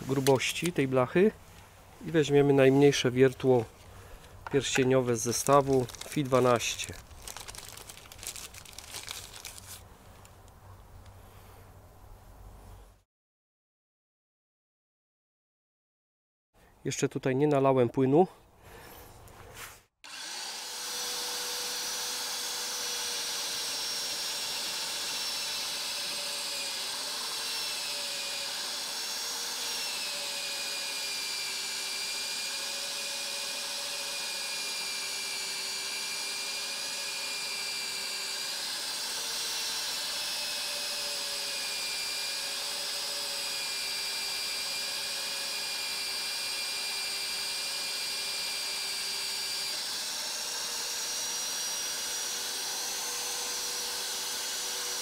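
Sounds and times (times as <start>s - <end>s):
magnetic drill cutting steel: 20.1s - 55.0s.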